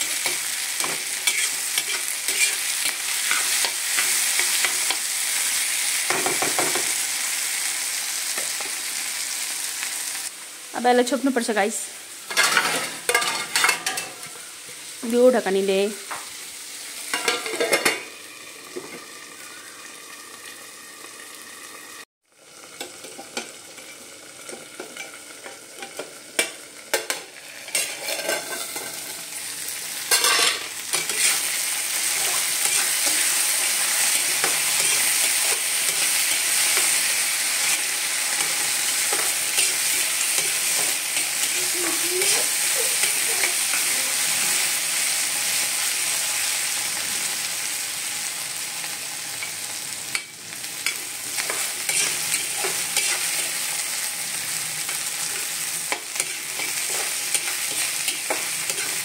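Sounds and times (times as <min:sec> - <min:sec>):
metal spatula scraping a pan: 0:00.0 - 0:05.0, 0:17.1 - 0:18.1, 0:25.8 - 0:44.7, 0:49.4 - 0:53.9, 0:54.5 - 0:59.0
grains sizzling in a pan: 0:00.0 - 0:59.0.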